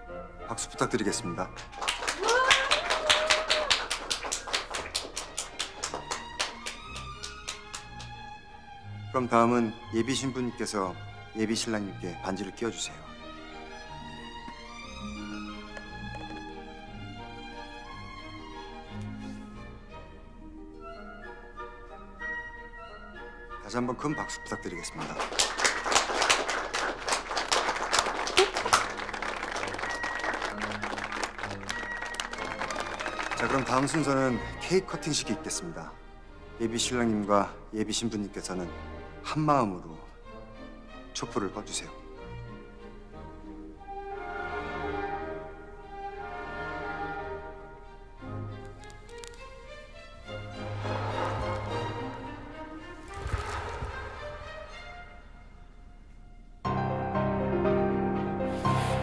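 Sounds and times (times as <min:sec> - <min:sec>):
soft background music: 0:00.0 - 0:59.0
crowd applauding: 0:01.1 - 0:08.2, 0:24.8 - 0:34.6, 0:50.8 - 0:52.3, 0:53.1 - 0:54.5
person cheering: 0:02.0 - 0:04.0.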